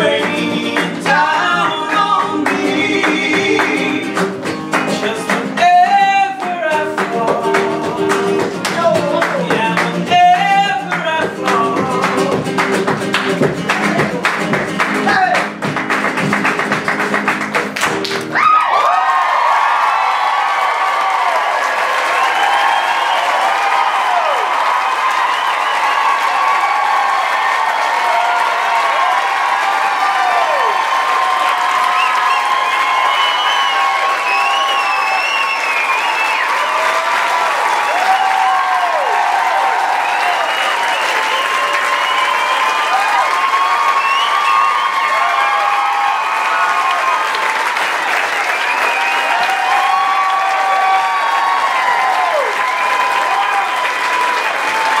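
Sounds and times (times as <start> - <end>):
audience applauding: 0.0 - 55.0
crowd whooping and shouting: 18.2 - 55.0.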